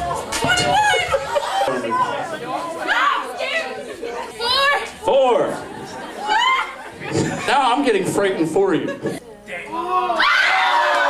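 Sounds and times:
excited chatter in a hall: 0:00.0 - 0:11.0.

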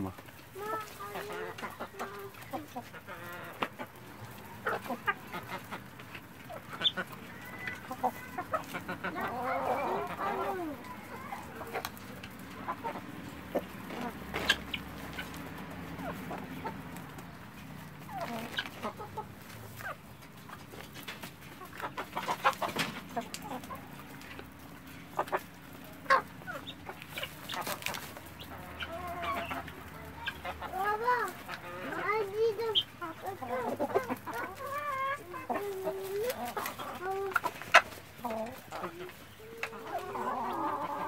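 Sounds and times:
birds calling: 0:00.0 - 0:41.0
clucking calls: 0:00.0 - 0:41.0.

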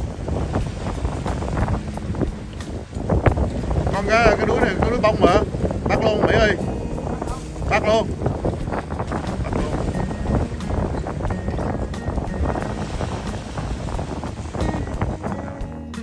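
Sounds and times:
surf washing over rocks: 0:00.0 - 0:16.0
wind buffeting microphone: 0:00.0 - 0:16.0.

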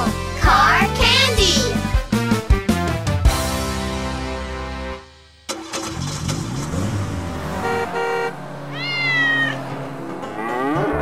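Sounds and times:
cartoon cat meowing: 0:08.7 - 0:09.6.

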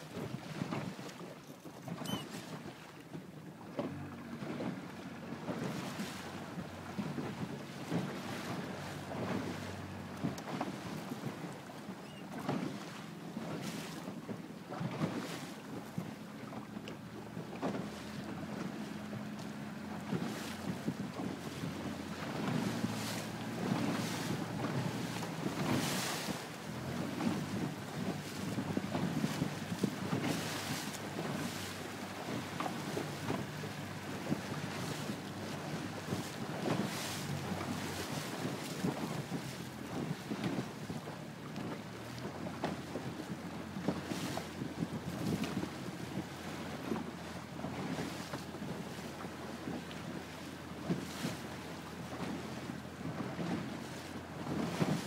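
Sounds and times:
outboard motor humming: 0:00.0 - 0:55.0
water splashing past hull: 0:00.0 - 0:55.0
wind buffeting microphone: 0:04.0 - 0:47.1.

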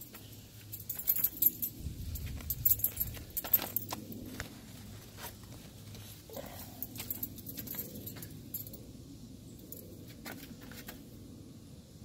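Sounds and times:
keys jingling on a keyring: 0:00.6 - 0:04.2, 0:06.8 - 0:08.8.

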